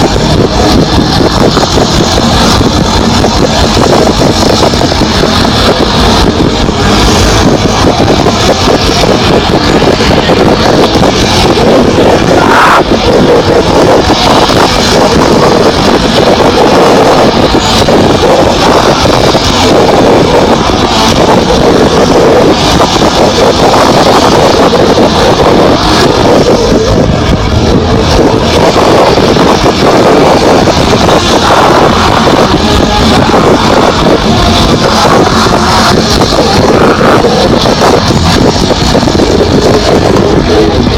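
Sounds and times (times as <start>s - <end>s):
distorted live metal band: 0.0s - 40.9s.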